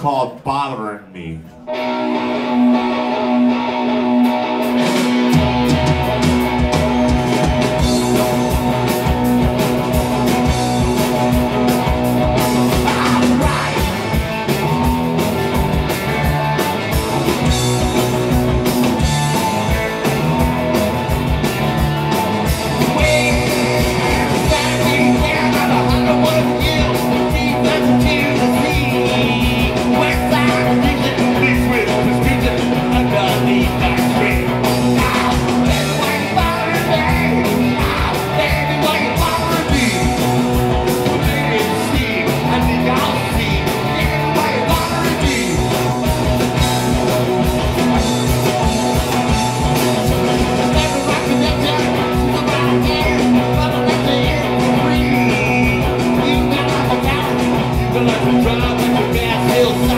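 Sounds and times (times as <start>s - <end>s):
rock band playing: 0.0s - 59.9s
electric guitar: 1.4s - 59.9s
person singing: 12.5s - 14.2s, 22.8s - 40.4s, 41.0s - 46.0s, 50.5s - 59.9s.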